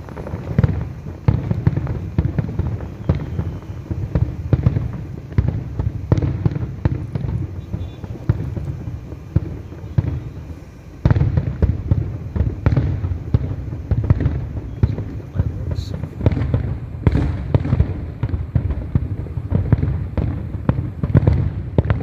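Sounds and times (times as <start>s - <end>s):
fireworks booming and crackling: 0.0s - 22.0s.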